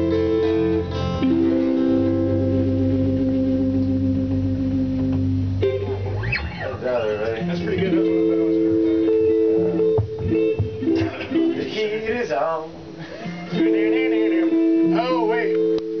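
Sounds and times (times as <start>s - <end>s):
people talking: 6.5s - 8.8s, 10.8s - 12.8s, 13.5s - 15.6s.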